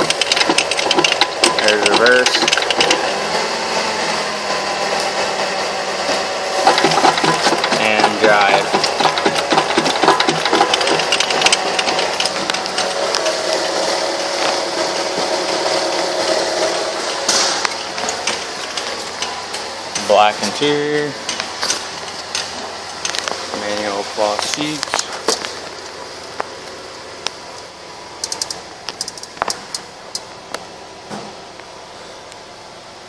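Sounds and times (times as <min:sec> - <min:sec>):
rapid mechanical clatter: 0:00.0 - 0:26.5, 0:27.2 - 0:30.6
car engine running: 0:00.0 - 0:33.0.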